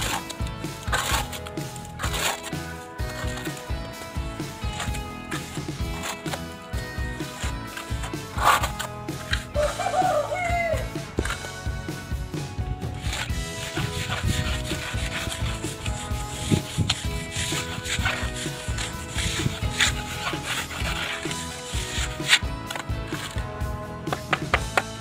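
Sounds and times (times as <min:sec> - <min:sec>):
trowel scraping wet cement: 0:00.0 - 0:24.9.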